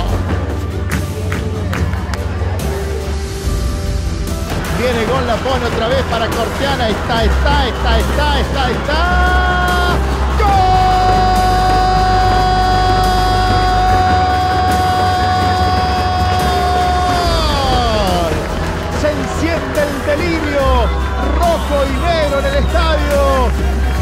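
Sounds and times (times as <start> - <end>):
background music with bass line: 0.0 - 24.0
commentator shouting: 4.7 - 24.0.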